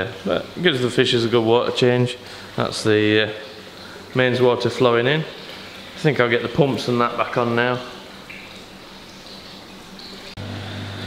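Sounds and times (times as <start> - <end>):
pond pumps humming: 0.0 - 11.0.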